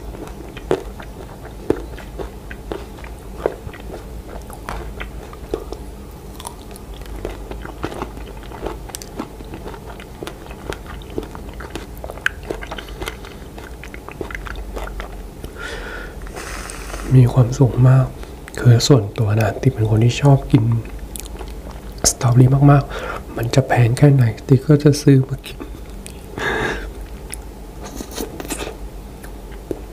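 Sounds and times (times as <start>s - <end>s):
close chewing: 0.0s - 15.6s, 19.3s - 22.2s.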